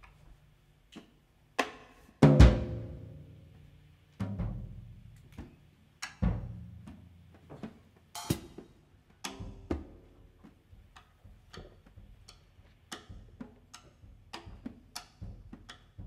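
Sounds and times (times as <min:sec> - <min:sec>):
bass drum and tom hits: 0:02.2 - 0:03.2.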